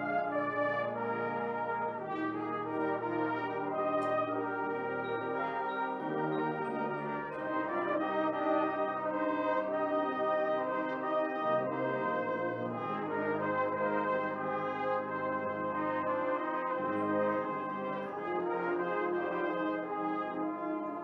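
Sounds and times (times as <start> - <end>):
brass band playing held chords: 0.0 - 21.0.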